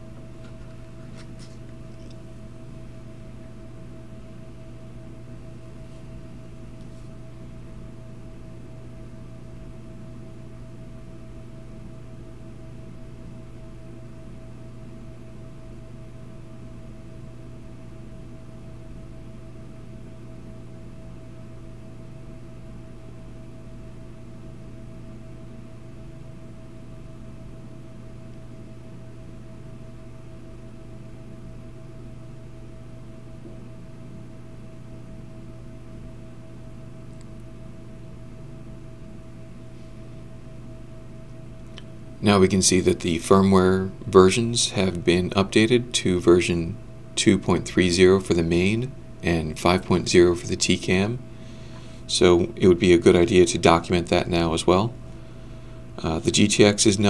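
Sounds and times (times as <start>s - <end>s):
low electrical hum: 0.0s - 57.0s.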